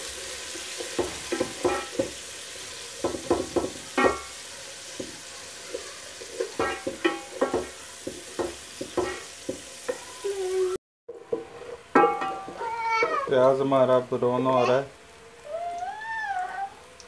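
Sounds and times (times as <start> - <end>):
onions sizzling in oil: 0.0 - 17.0
spatula scraping pot: 11.1 - 13.4.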